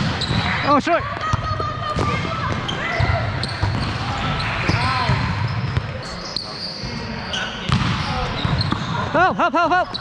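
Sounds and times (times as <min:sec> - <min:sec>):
shoe squeaks and footfalls: 0:00.0 - 0:00.7, 0:02.5 - 0:09.1
players' voices: 0:00.0 - 0:10.0.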